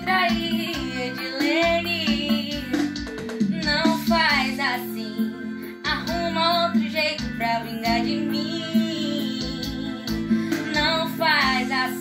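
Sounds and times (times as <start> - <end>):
guitar: 0.0 - 12.0
young woman singing: 0.0 - 12.0.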